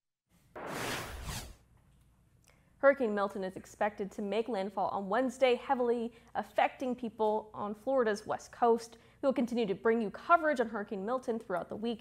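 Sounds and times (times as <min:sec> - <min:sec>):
whoosh sound effect: 0:00.5 - 0:01.6
woman speaking: 0:02.8 - 0:12.0.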